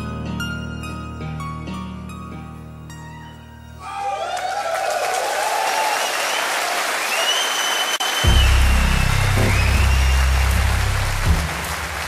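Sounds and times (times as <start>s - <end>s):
audience applause: 3.8s - 12.0s
live stage music: 8.0s - 12.0s
loud deep bass: 8.2s - 11.8s.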